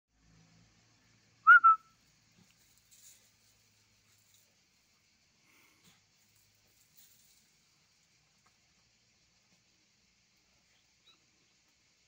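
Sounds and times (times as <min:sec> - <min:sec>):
person whistling short notes: 0:01.5 - 0:01.9.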